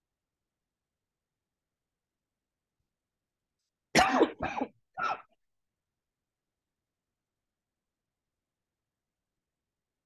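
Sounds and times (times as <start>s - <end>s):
man clearing his throat: 4.0s - 5.4s.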